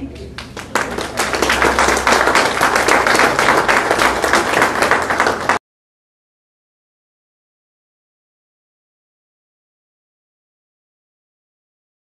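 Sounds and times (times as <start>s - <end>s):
audience applauding: 0.4s - 5.6s.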